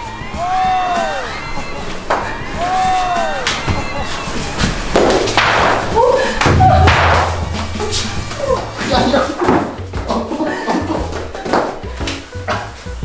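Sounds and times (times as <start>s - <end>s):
feet stomping on floor: 3.4s - 4.0s, 4.6s - 10.3s, 10.9s - 12.8s
person laughing: 7.5s - 11.5s.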